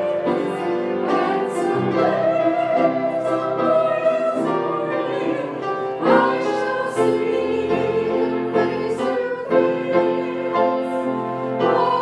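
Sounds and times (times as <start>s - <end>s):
hymn singing: 0.0s - 12.0s
instrumental accompaniment: 0.0s - 12.0s.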